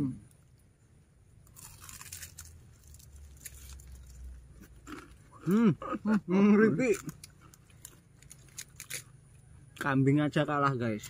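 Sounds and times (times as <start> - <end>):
crunching of fried food: 0.1 - 6.2, 6.8 - 9.9.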